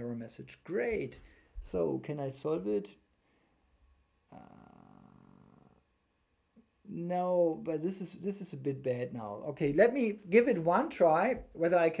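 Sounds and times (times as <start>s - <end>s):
man's drawn-out hesitation uhh: 4.3s - 5.2s.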